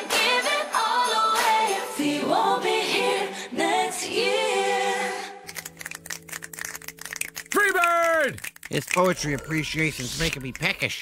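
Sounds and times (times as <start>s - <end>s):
audience snapping fingers: 5.5s - 10.8s.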